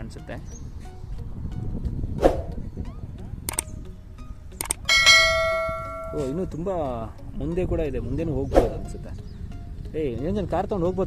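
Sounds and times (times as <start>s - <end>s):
mouse clicks: 3.5s - 3.8s, 4.6s - 4.9s
bell chime: 4.9s - 6.6s.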